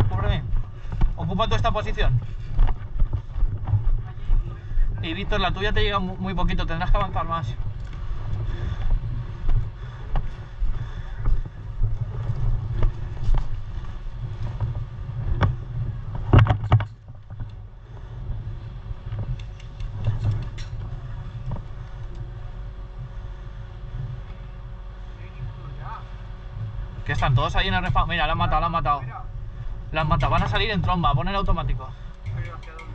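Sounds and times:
low steady rumble: 0:00.0 - 0:32.9.

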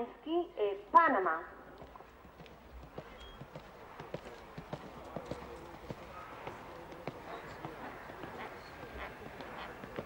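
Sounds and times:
horse hoofbeats on sand: 0:02.0 - 0:10.0.

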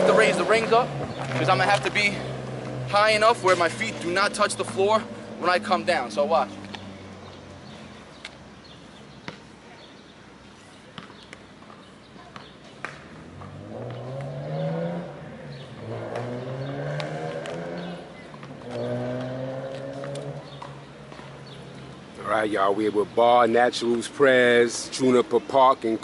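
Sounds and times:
vehicle engine pulling through gears: 0:13.2 - 0:22.0.

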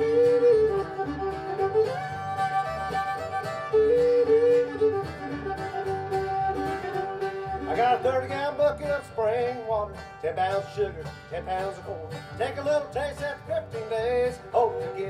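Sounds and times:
fiddle melody: 0:00.0 - 0:15.0
strummed acoustic guitars: 0:00.0 - 0:15.0
upright bass: 0:00.0 - 0:15.0.

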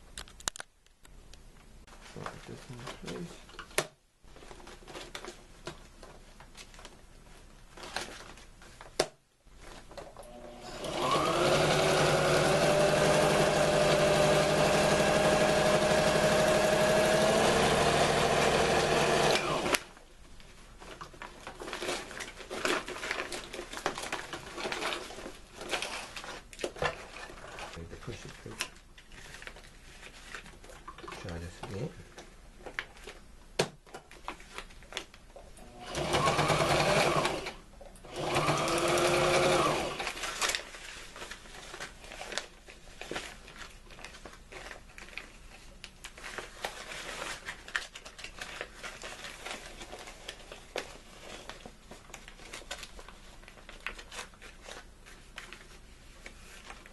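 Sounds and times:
sewing machine motor whining: 0:10.3 - 0:19.8, 0:35.7 - 0:40.0.

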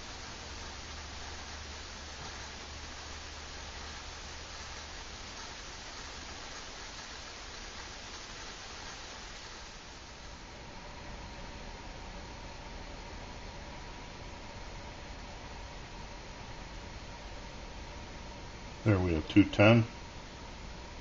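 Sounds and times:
alcohol stove hissing: 0:00.0 - 0:21.0.

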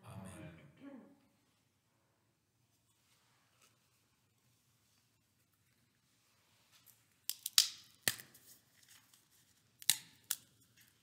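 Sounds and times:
wafer snapping cracks: 0:07.3 - 0:08.3, 0:09.8 - 0:10.5.

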